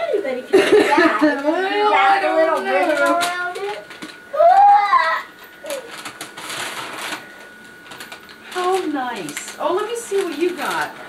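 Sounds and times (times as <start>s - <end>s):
paper rustling and crinkling: 5.5s - 11.0s.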